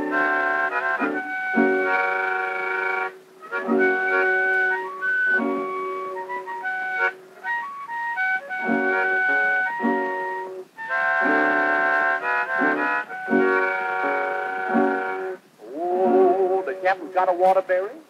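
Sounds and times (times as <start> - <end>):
guitar strums: 0.0 - 7.2, 8.5 - 16.9
harmonica playing chords: 0.0 - 17.0.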